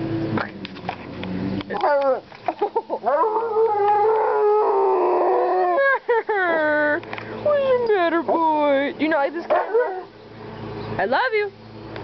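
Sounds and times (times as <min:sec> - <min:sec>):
dog howling: 0:01.7 - 0:02.2, 0:03.0 - 0:05.9, 0:07.4 - 0:08.0.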